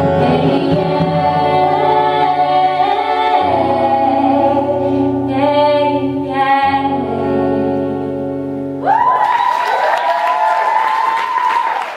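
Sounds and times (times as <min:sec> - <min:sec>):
audience cheering: 0:08.8 - 0:11.9
audience clapping: 0:09.0 - 0:11.9.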